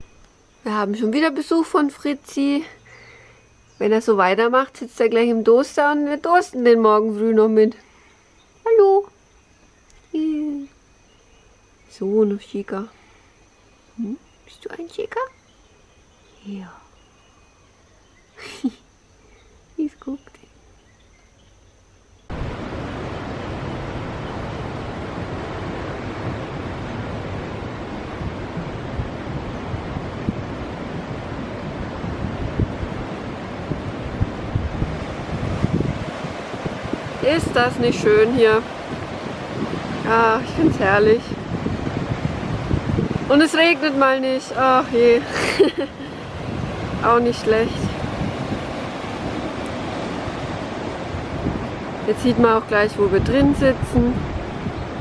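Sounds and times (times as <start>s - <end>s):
ocean surf washing in: 22.3s - 55.0s
wind buffeting microphone: 22.3s - 55.0s.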